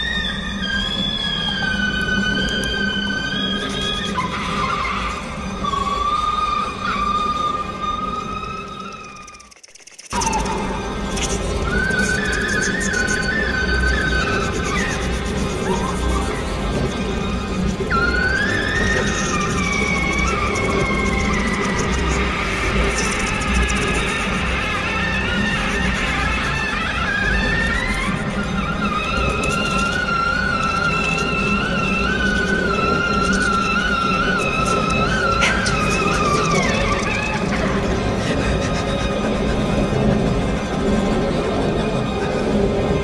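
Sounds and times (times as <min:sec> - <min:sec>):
subway train rumbling: 0:00.0 - 0:09.2, 0:10.2 - 0:43.0
high wavering train squeal: 0:00.0 - 0:43.0
low drone: 0:00.0 - 0:43.0
siren-like wailing tone: 0:00.0 - 0:43.0.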